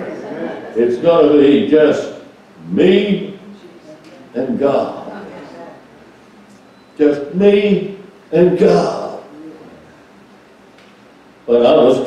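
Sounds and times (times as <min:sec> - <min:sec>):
man speaking into microphone: 0:00.8 - 0:03.4, 0:04.3 - 0:05.0, 0:07.0 - 0:09.3, 0:11.5 - 0:12.0.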